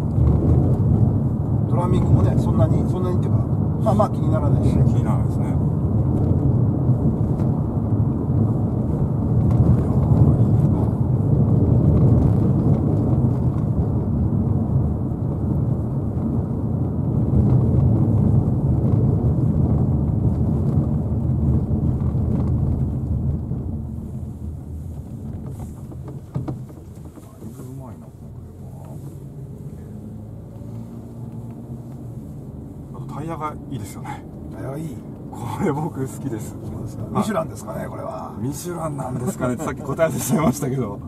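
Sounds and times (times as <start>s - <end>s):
tyre and road noise rumble: 0.0s - 41.0s.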